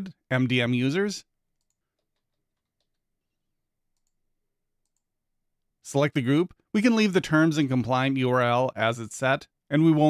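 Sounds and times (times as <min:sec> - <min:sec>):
person speaking: 0:00.0 - 0:01.3, 0:05.8 - 0:10.0.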